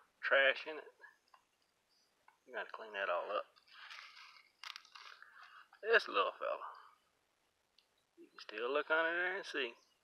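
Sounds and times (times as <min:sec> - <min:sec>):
sharp crackle: 0:03.4 - 0:05.9
crunchy rustling: 0:03.5 - 0:05.8.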